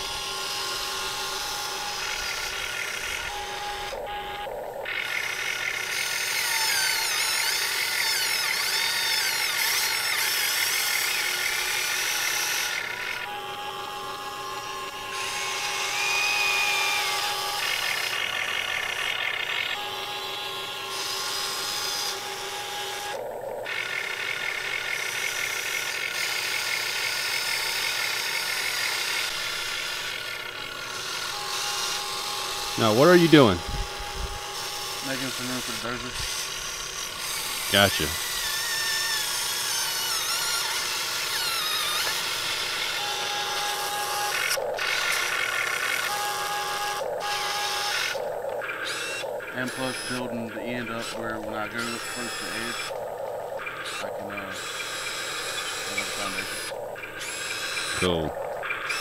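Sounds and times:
electric motors and gearboxes whining: 0:00.0 - 0:59.0.

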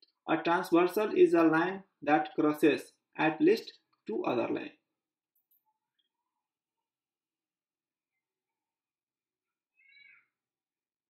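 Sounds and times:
faint high-pitched cry: 0:09.8 - 0:10.4.

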